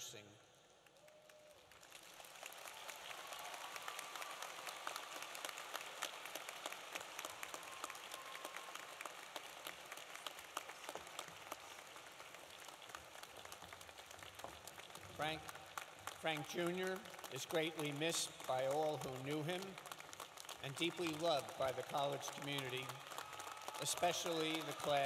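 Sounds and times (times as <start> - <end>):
audience applauding: 0.8 - 25.0.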